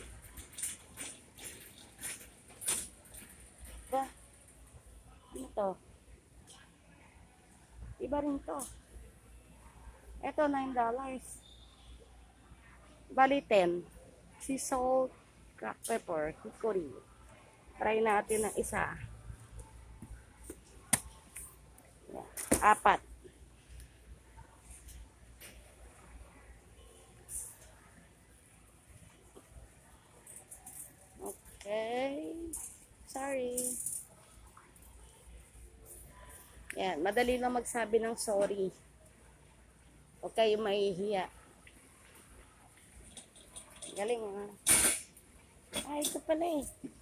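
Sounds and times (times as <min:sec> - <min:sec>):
faint store hiss: 0:00.0 - 0:47.0
low room noise: 0:00.0 - 0:47.0.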